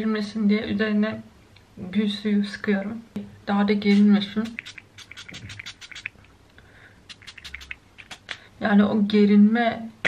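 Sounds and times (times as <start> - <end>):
spray bottle spritzing: 3.9 - 6.3, 7.1 - 8.4.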